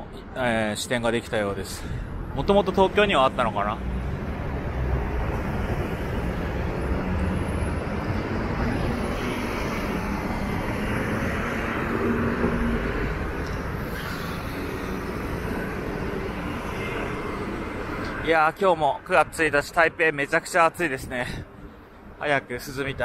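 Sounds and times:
vehicles driving past: 0:00.0 - 0:23.0
engine passing close: 0:02.4 - 0:18.3.

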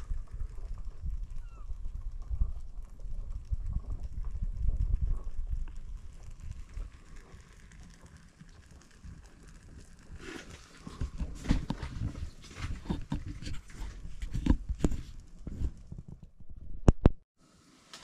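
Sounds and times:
low rumble: 0:00.0 - 0:08.9.

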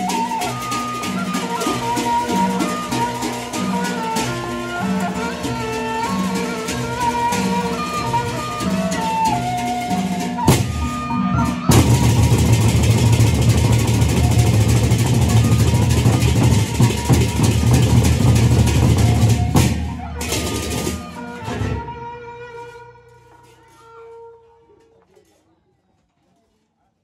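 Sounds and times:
cymbals: 0:00.0 - 0:24.5.

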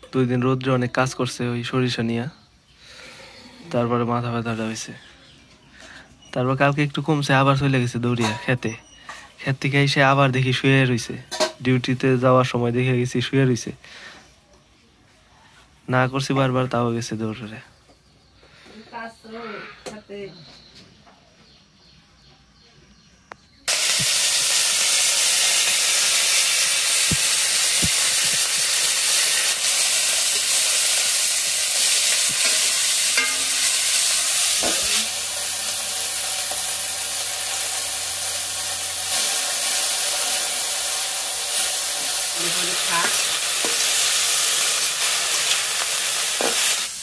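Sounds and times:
greens sizzling in hot oil: 0:23.7 - 0:47.0.

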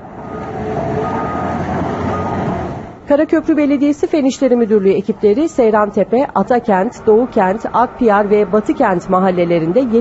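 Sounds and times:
excavator engine and hydraulics: 0:00.0 - 0:03.1.

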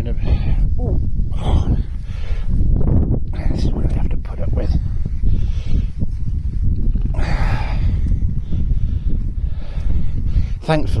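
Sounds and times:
wind on microphone: 0:00.0 - 0:11.0
ram breathy sound: 0:01.3 - 0:03.6, 0:04.8 - 0:10.6.

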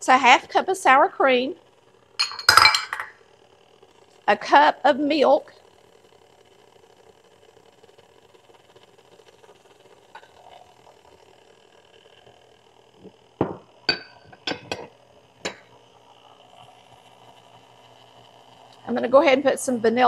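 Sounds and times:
glassware clinking and knocking: 0:02.2 - 0:03.1, 0:13.4 - 0:14.9
stand mixer humming: 0:05.1 - 0:20.0.

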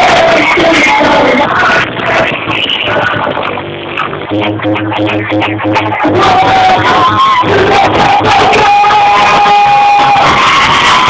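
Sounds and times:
live pop music over sound system: 0:00.0 - 0:11.0
steady low note: 0:01.8 - 0:07.1.

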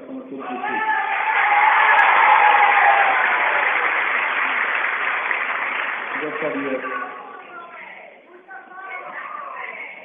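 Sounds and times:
audience applauding: 0:01.1 - 0:07.1.

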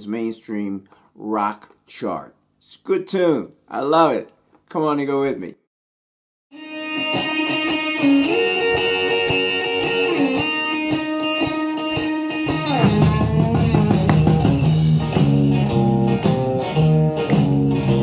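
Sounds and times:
blues electric guitar: 0:06.6 - 0:18.0.

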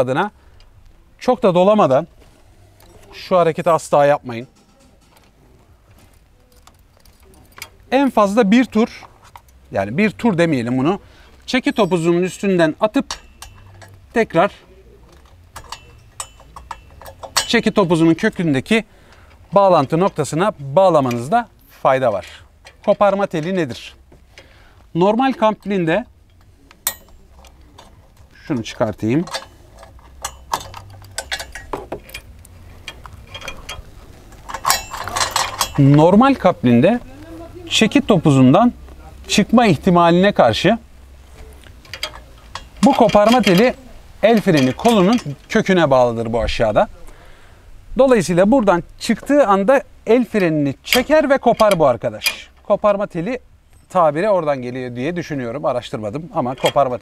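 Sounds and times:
man speaking: 0:00.0 - 0:00.4, 0:01.2 - 0:04.8, 0:07.3 - 0:09.1, 0:09.7 - 0:13.2, 0:14.0 - 0:16.0, 0:17.5 - 0:18.9, 0:19.5 - 0:24.0, 0:24.9 - 0:26.1, 0:27.5 - 0:29.4, 0:35.8 - 0:41.6, 0:42.8 - 0:57.0
light metallic clicks and clinks: 0:04.2 - 0:05.4, 0:06.0 - 0:37.2, 0:39.3 - 0:47.1, 0:48.2 - 0:57.0
light metallic clicks and taps: 0:12.8 - 0:14.2, 0:15.0 - 0:20.4, 0:25.3 - 0:36.2, 0:41.4 - 0:45.8.

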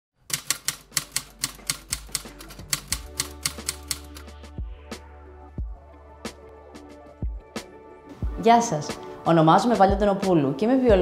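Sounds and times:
typewriter key clicks: 0:00.3 - 0:04.2
soft background music: 0:00.3 - 0:11.0.

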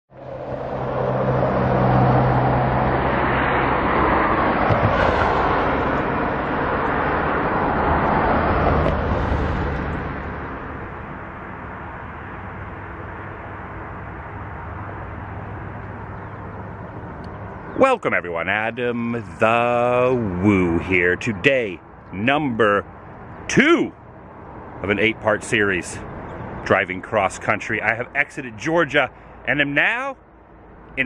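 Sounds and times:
road traffic passing close: 0:00.1 - 0:31.0.

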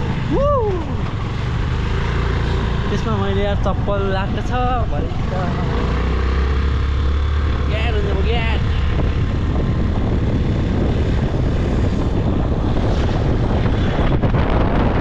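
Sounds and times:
road noise: 0:00.0 - 0:15.0
wind on microphone: 0:00.0 - 0:15.0.

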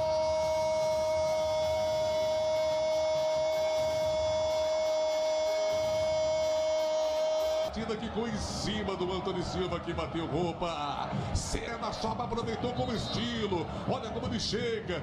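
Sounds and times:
commentator's sustained goal cry: 0:00.0 - 0:08.8.

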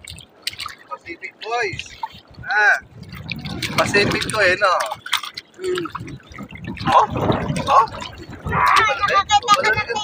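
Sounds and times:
feet splashing in shallow water: 0:00.0 - 0:10.0.

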